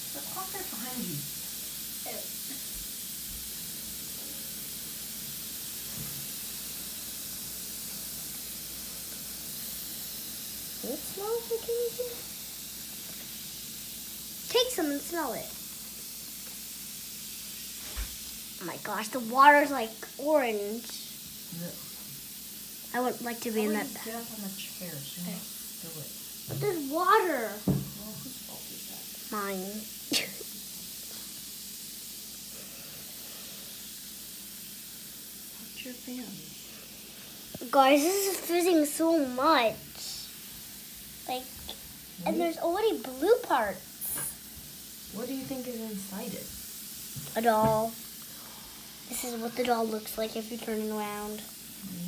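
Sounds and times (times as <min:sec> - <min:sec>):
fizzing hiss of dissolving tablet: 0:00.0 - 0:52.0.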